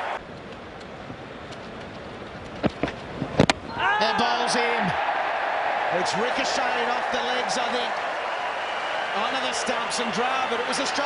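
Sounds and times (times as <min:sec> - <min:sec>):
open-air ground ambience: 0:00.0 - 0:11.0
crowd noise: 0:03.7 - 0:11.0.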